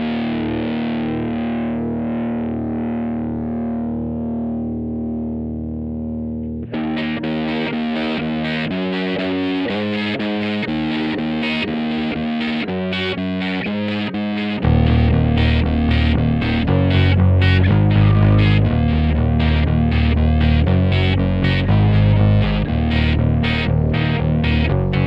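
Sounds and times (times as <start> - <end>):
distorted electric guitar: 0.0 - 25.0.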